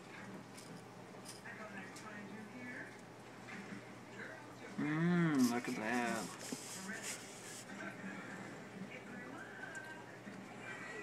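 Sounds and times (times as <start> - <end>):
knife scraping through cake: 5.4 - 7.8.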